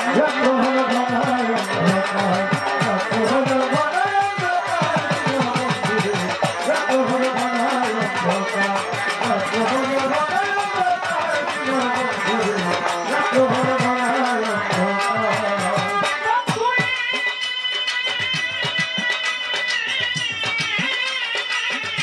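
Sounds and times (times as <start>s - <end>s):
rhythmic drumming: 0.0s - 22.0s.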